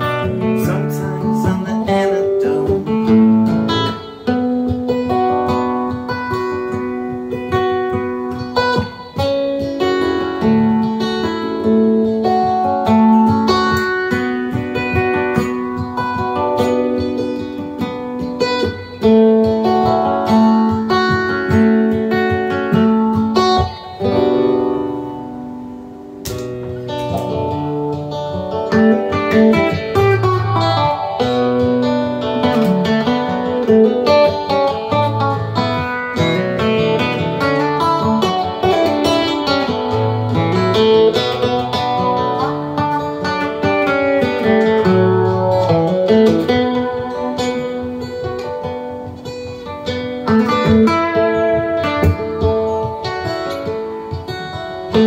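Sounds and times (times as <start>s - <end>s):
acoustic guitar arpeggios: 0.0s - 55.0s.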